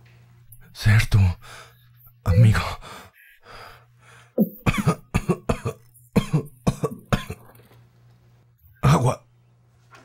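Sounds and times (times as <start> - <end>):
person coughing: 4.4 - 7.6.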